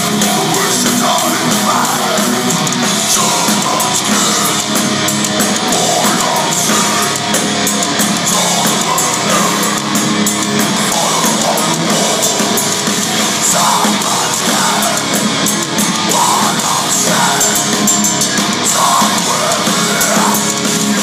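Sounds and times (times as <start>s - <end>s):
distorted electric guitars: 0.0s - 21.0s
drum kit with cymbals: 0.0s - 21.0s.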